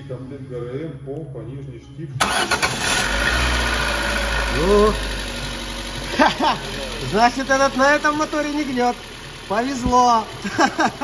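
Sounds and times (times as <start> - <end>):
car engine cranking and idling: 2.2 - 11.0.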